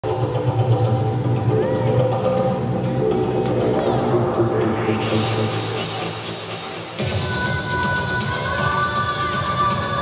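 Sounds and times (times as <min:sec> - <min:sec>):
music over public address: 0:00.0 - 0:10.0.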